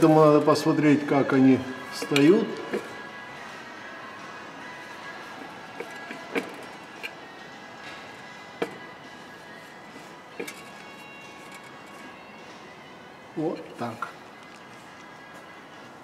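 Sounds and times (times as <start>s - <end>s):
quiet background music: 0.0s - 16.0s.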